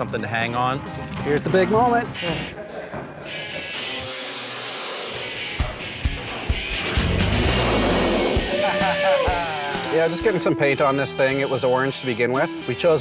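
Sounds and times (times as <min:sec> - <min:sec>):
background music: 0:00.0 - 0:04.1, 0:05.0 - 0:13.0.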